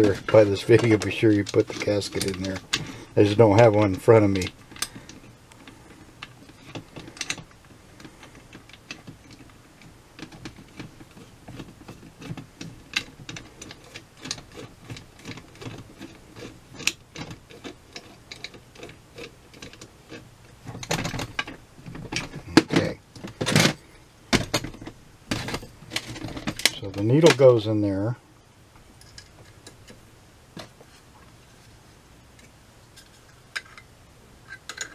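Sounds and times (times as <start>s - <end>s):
small metal parts clicking: 0.0s - 23.8s, 32.4s - 34.9s.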